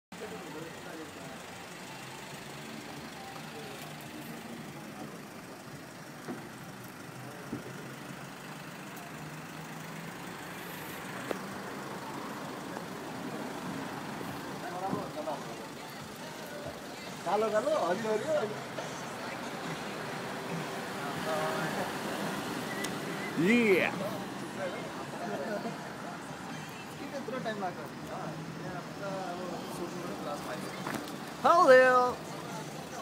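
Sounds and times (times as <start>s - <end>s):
road traffic hum: 0.1s - 33.0s
faint voices: 0.2s - 33.0s.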